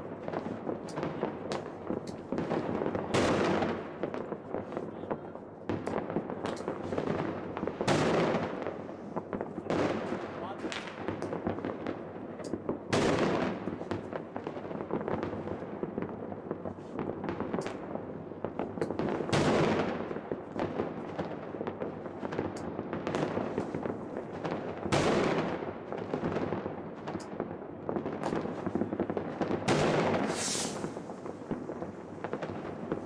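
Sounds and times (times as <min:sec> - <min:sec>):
loud firework bursts: 0:00.0 - 0:11.9, 0:28.0 - 0:33.0
crackle of distant firecrackers: 0:00.0 - 0:33.0.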